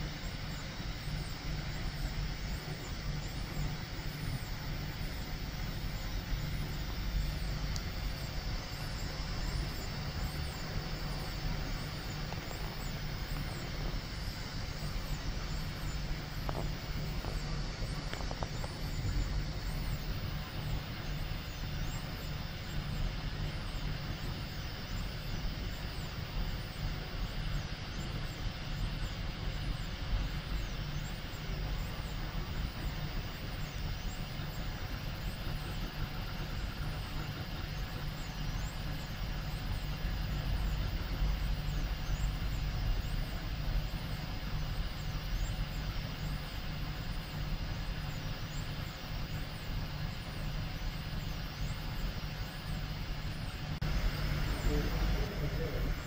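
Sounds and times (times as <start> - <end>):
blower fan humming: 0.0 - 56.0
stepper motors whining: 46.8 - 56.0.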